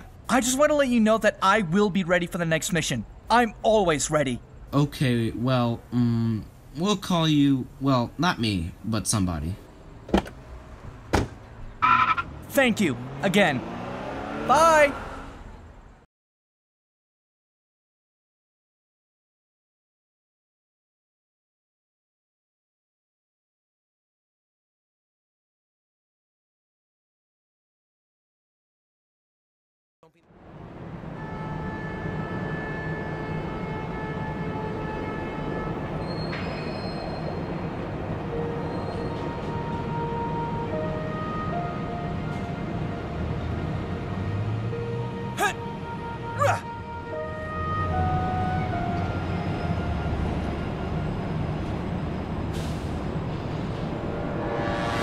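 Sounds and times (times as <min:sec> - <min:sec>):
car door thuds: 0:10.1 - 0:10.4, 0:11.1 - 0:11.4
brief pitched tone: 0:11.8 - 0:12.2.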